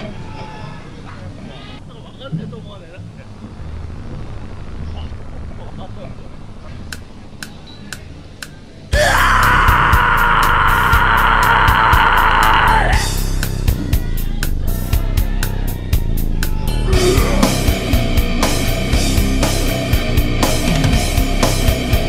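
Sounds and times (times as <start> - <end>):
long high scream: 9.0 - 13.0
grindcore band playing: 9.0 - 22.0.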